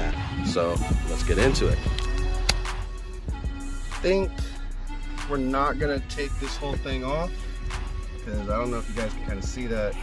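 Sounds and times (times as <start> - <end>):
hip-hop beat with bass: 0.0 - 10.0.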